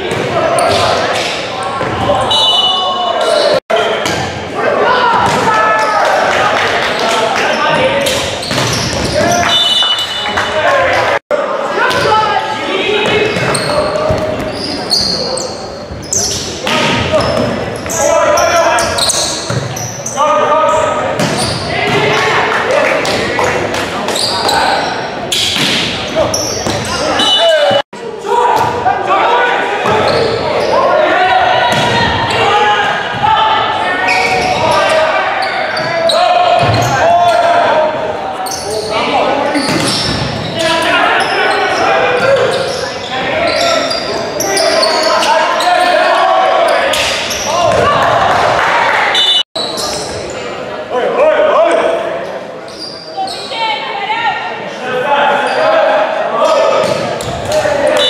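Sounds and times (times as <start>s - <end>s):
people shouting and calling: 0.0s - 19.5s, 25.9s - 49.4s.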